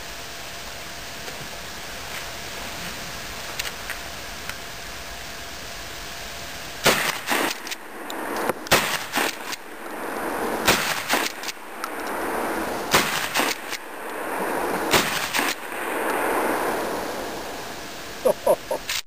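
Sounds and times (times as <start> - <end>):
shotgun shots: 6.8 - 7.9, 8.5 - 9.7, 10.5 - 11.8, 12.9 - 14.0, 14.9 - 16.3.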